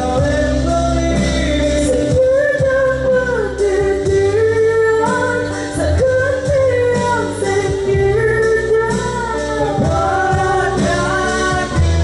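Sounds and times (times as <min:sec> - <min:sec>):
live pop-rock band playing: 0:00.0 - 0:12.0
woman singing slow melody: 0:00.0 - 0:12.0.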